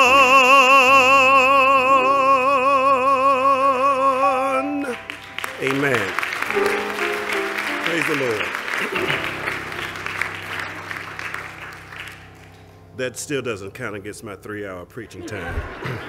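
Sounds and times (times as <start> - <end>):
held musical chord: 4.1 - 15.4
congregation applauding: 4.6 - 13.0.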